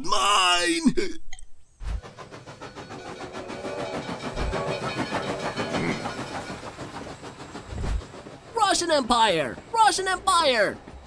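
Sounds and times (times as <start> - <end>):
cartoon steam locomotive rattle: 1.8 - 11.0.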